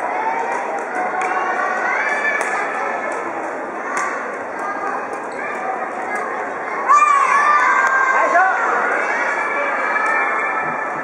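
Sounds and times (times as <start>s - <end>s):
children shouting and cheering: 0.0s - 11.0s
hubbub of voices: 0.0s - 11.0s.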